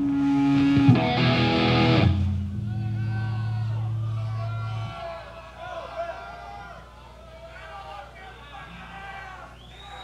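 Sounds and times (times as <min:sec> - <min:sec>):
heavy metal low note held: 0:00.5 - 0:05.0
crowd cheering: 0:02.5 - 0:10.0.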